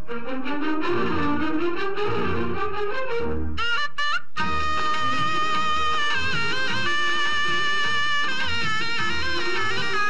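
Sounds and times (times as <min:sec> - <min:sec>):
reedy wind instrument melody: 0:00.0 - 0:10.0.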